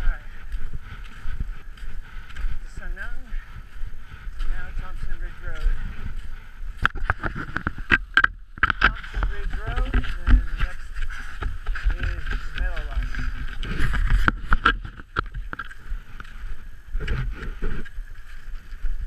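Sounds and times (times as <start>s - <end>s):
ski pole clicks and scrapes: 6.8s - 16.3s.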